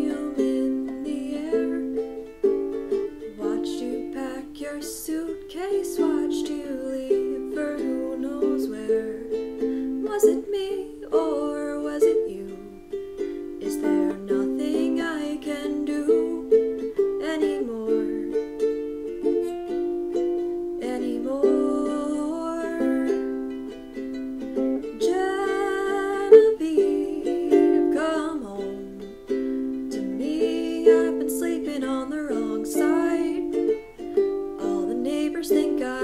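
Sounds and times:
ukulele strumming: 0:00.0 - 0:36.0.

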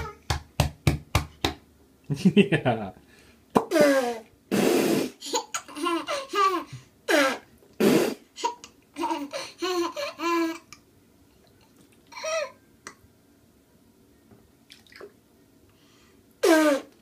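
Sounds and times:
toddler giggling: 0:05.2 - 0:07.4, 0:08.4 - 0:10.8.

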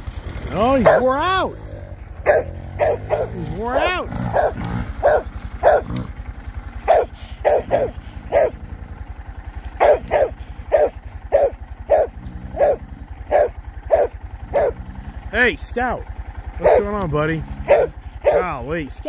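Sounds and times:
dog barking: 0:00.7 - 0:01.5, 0:02.2 - 0:06.1, 0:06.8 - 0:08.6, 0:09.8 - 0:14.9, 0:16.6 - 0:17.0, 0:17.6 - 0:18.6.

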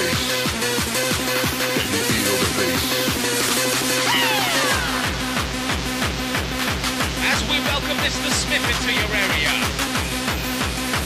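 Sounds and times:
fast rave techno: 0:00.0 - 0:11.0.

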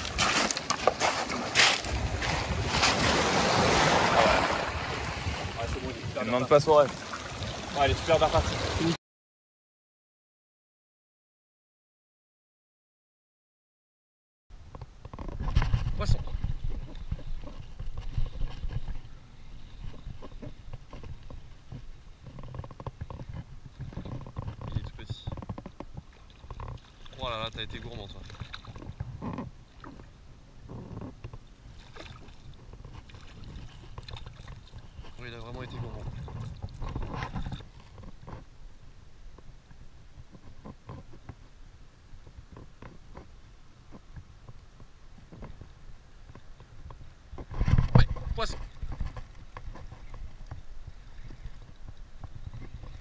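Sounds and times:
wind rumble on microphone: 0:01.6 - 0:06.2, 0:14.6 - 0:53.0.

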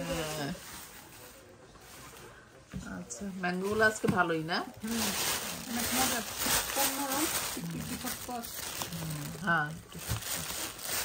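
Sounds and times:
plastic bag crinkling: 0:03.9 - 0:11.0.

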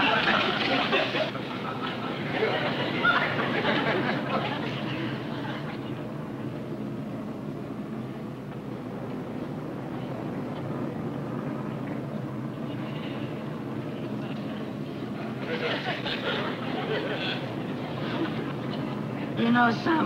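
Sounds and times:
airliner engines droning: 0:00.0 - 0:20.0.

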